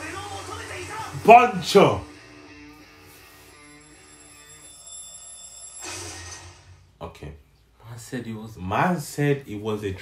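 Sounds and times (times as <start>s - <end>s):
alarm clock ringing: 3.2s - 6.9s.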